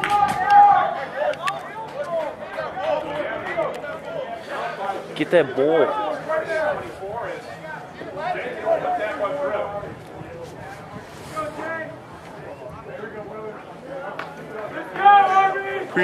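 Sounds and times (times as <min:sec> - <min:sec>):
indistinct talk of people: 0:00.0 - 0:16.0.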